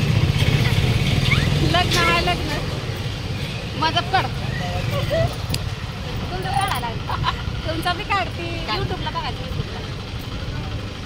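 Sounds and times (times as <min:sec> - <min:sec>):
vehicle engine rumbling: 0:00.0 - 0:11.0
women talking: 0:01.6 - 0:02.8, 0:03.7 - 0:05.5, 0:06.1 - 0:10.8.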